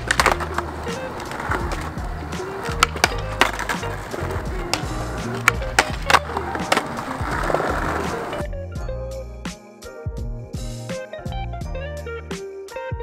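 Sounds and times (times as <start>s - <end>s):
skateboard clacks: 0.0s - 8.4s
skateboard wheels rolling on concrete: 0.0s - 8.5s
background music: 0.0s - 13.0s.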